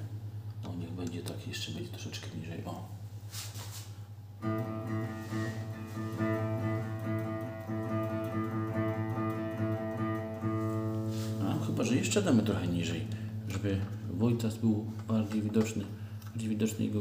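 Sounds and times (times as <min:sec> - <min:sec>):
low amp hum: 0:00.0 - 0:17.0
electric guitar picking low note: 0:04.4 - 0:16.2.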